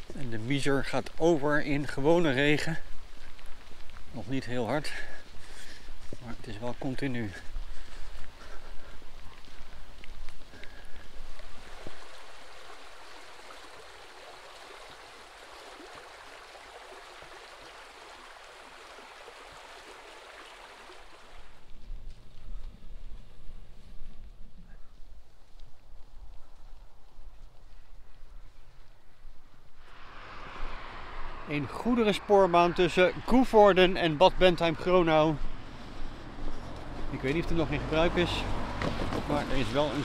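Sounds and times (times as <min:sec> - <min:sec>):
stream water rushing over rocks: 0:11.2 - 0:21.6.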